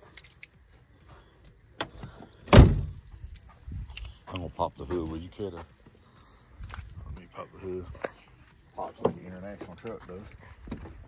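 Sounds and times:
car door slamming: 2.5 - 3.0.

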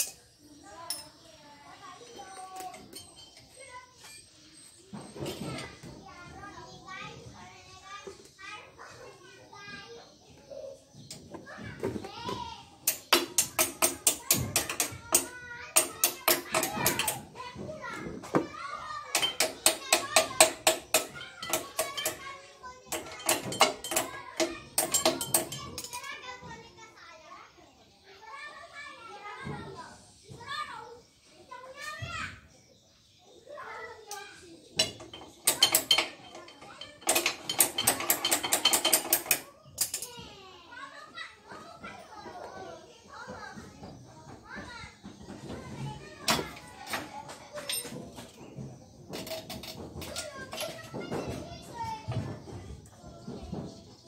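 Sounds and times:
child's voice: 0.0 - 38.4, 39.4 - 48.6, 49.8 - 54.0.

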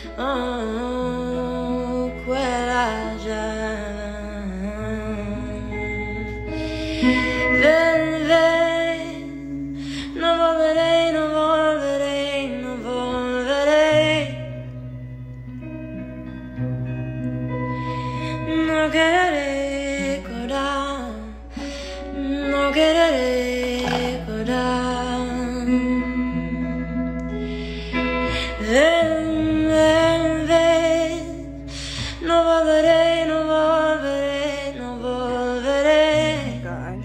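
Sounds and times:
woman singing slow song: 0.0 - 16.0, 17.3 - 37.0
electric guitar accompaniment: 0.0 - 37.0.

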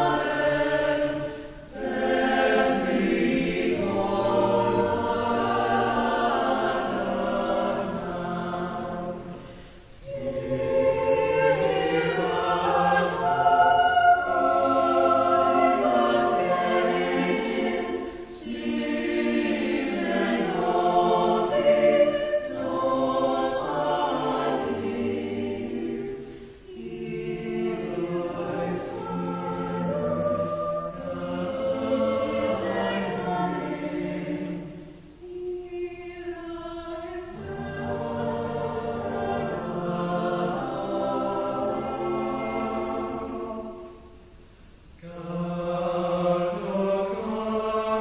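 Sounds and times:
choir singing in harmony: 0.0 - 48.0.

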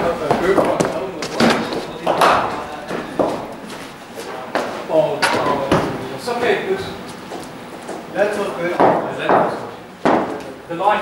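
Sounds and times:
people talking: 0.0 - 7.1, 8.1 - 11.0.

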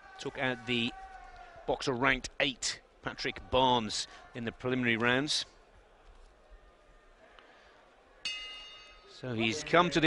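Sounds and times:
boxing ring bell: 8.3 - 9.2.

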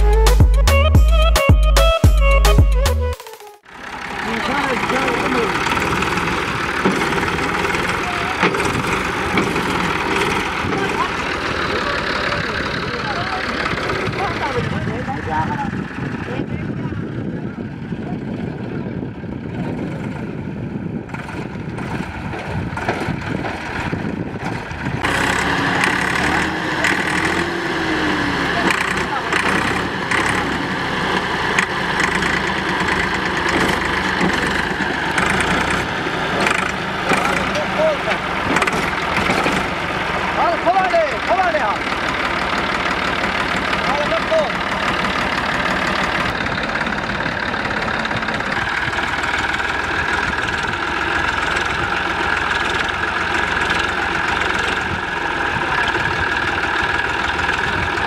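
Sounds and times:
tractor diesel engine under load: 3.6 - 58.0
men's voices: 4.0 - 18.4, 31.7 - 48.8.

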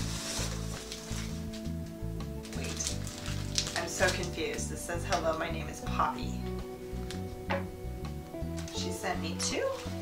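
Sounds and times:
tissue paper crinkling: 0.0 - 1.7, 2.4 - 4.7, 9.6 - 10.0
background music: 0.0 - 10.0.

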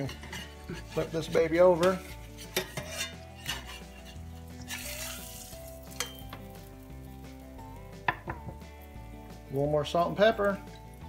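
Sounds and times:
spatula scraping a pan: 0.0 - 6.3
butter sizzling in a skillet: 0.0 - 11.0.

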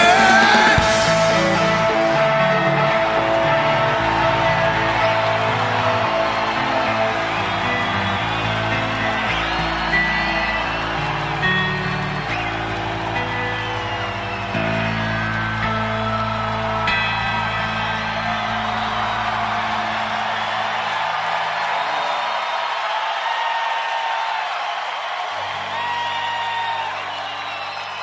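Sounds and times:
rock band chords ringing out: 0.0 - 21.0
crowd cheering and whistling: 0.0 - 28.0.

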